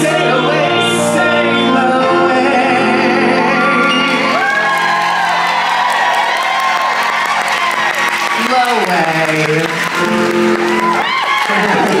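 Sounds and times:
audience cheering and applause: 3.8 - 12.0.

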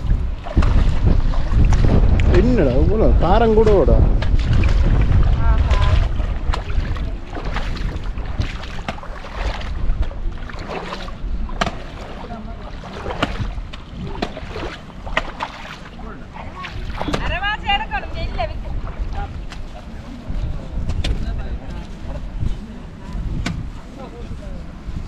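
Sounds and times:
footsteps splashing through water: 0.0 - 17.6
wind buffeting microphone: 0.0 - 25.0.

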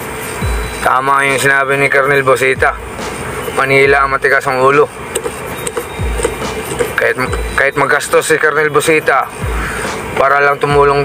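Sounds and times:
faint music: 0.0 - 11.0
truck cab noise: 0.0 - 11.0
deep low thuds: 5.8 - 7.7.

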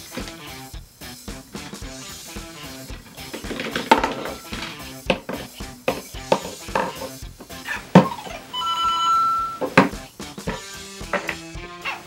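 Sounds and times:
electronic game music: 8.0 - 9.9
held beeping tone: 8.0 - 9.9.

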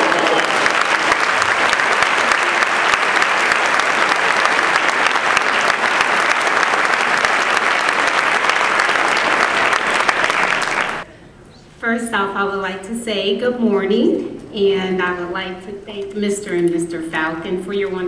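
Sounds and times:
audience applauding: 0.0 - 11.1.

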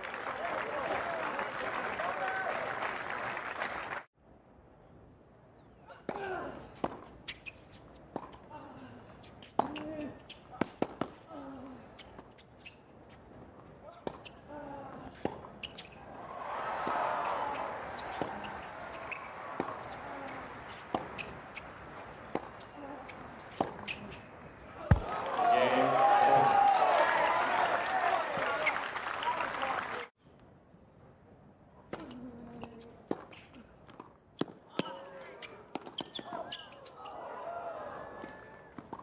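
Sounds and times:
court shoes squeaking: 5.6 - 16.2, 16.8 - 25.1, 31.8 - 37.2
tennis ball hits and bounces: 6.1 - 8.4, 9.4 - 11.2, 16.8 - 24.2, 31.9 - 35.1, 35.7 - 37.0
racket hitting tennis ball: 16.8 - 24.2.

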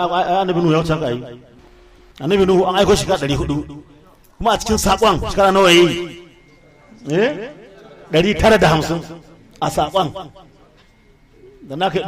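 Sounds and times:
man speaking: 2.2 - 10.5, 11.6 - 12.0.

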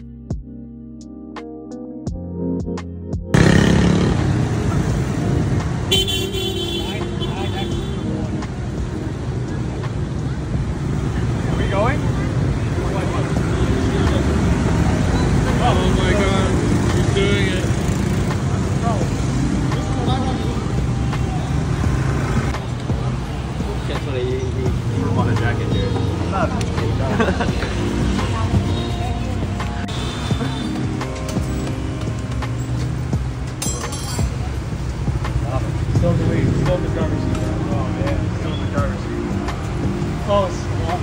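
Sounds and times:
street traffic noise: 2.1 - 41.0.

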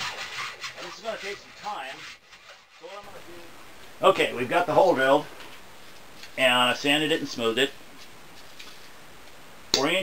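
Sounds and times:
hole saw cutting plastic pipe: 0.0 - 3.0.

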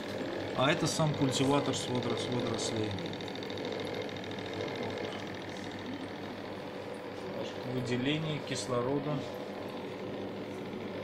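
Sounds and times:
hum of running apparatus: 0.0 - 11.0.

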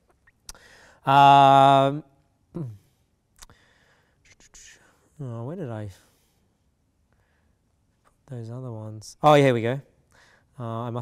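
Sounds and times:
man whispering: 4.2 - 6.2.

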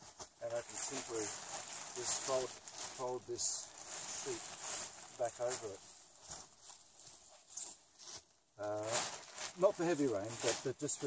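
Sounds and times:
plastic tarp crinkles: 0.0 - 11.0
rustles and soft footsteps: 0.0 - 11.0.

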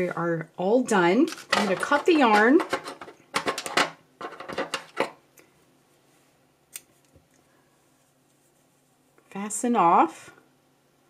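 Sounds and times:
handling sounds: 1.2 - 5.2.

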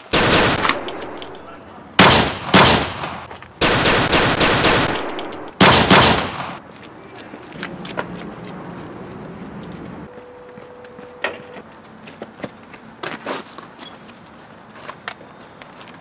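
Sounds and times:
gunshots with echo: 0.0 - 6.6.

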